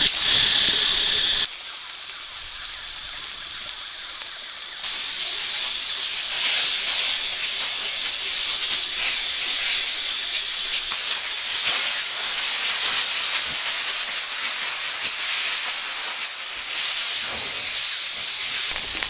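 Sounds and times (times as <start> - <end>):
fish sizzling on hot stone: 0.0 - 19.0.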